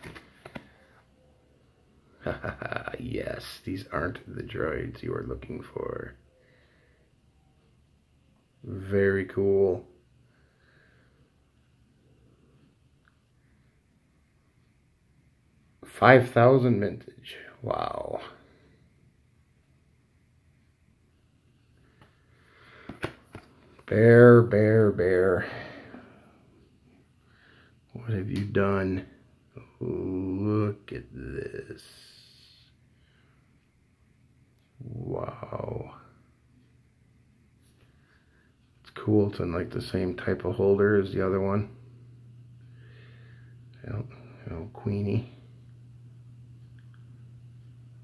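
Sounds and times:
cardboard rustling and clicks: 0:00.0 - 0:00.7.

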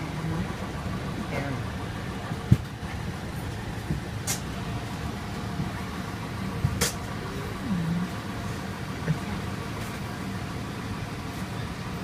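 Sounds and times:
machinery droning: 0:00.0 - 0:12.0.

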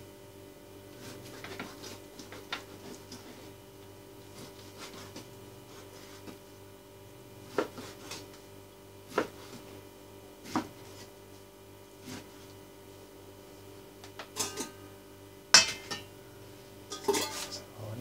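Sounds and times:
steady low hum: 0:00.0 - 0:18.0
knife clatter: 0:15.6 - 0:16.1, 0:16.9 - 0:17.6.

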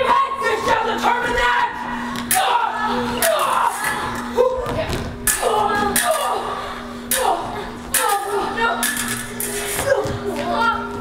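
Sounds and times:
shouts and grunts: 0:00.0 - 0:04.7
low hum: 0:00.7 - 0:11.0.

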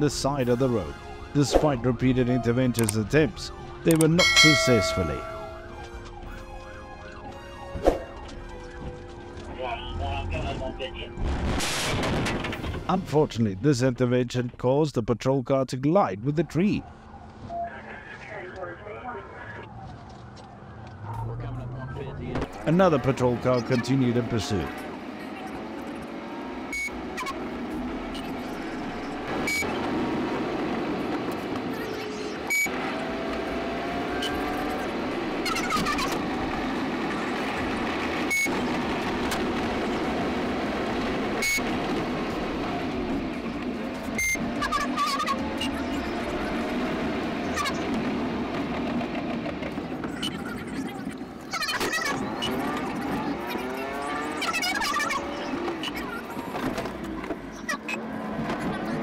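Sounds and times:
car engine and road noise: 0:00.0 - 0:15.4, 0:16.2 - 0:59.0
police siren wailing: 0:00.4 - 0:11.2, 0:16.3 - 0:49.1.

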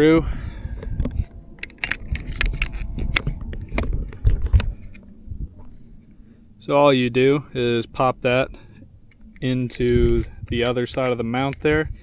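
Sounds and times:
low rumble: 0:00.0 - 0:10.7.

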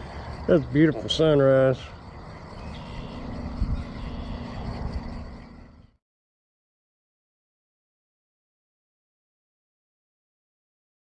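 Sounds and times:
faint hum: 0:00.0 - 0:06.0
low steady rumble: 0:00.0 - 0:06.0.

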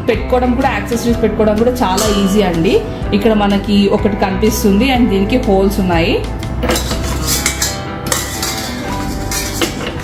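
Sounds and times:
attachment knocking against steel bowl: 0:06.6 - 0:10.0.

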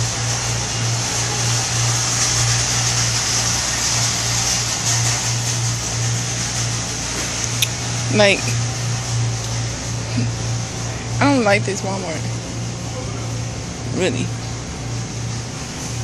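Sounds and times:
low hum with hiss: 0:00.0 - 0:16.0.

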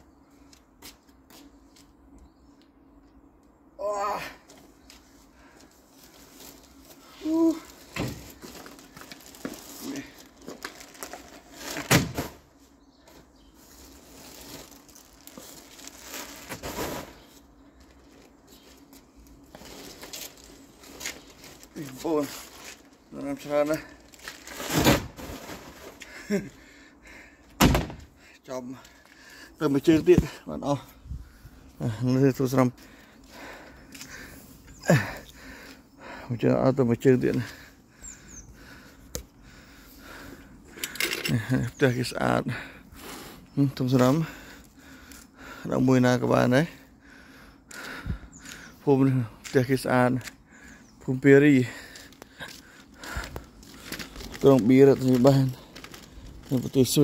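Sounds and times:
heavy thunk: 0:27.6 - 0:28.0.

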